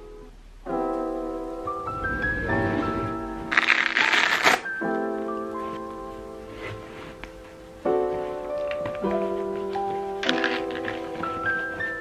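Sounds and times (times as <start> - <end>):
background music: 0.7 - 12.0
velcro ripping open: 3.5 - 4.7.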